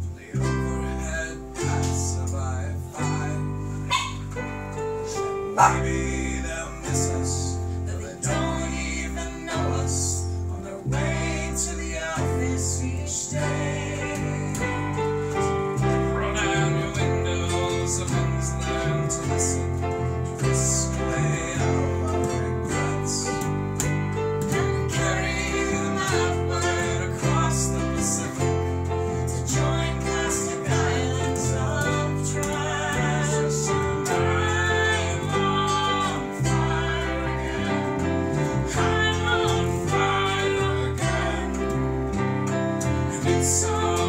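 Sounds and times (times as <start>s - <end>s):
electric bass guitar: 0.0s - 44.0s
strummed acoustic guitar: 0.0s - 44.0s
woman singing: 29.4s - 41.8s.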